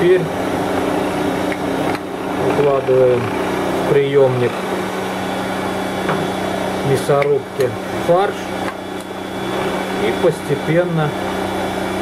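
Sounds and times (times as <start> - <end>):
meat grinder motor hum: 0.0 - 12.0.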